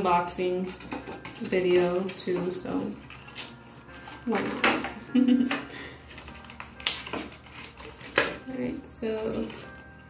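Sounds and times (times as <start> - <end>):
faint music: 0.0 - 10.0
cardboard packaging rustling: 0.4 - 10.0
sharp cardboard crackle: 6.1 - 9.8.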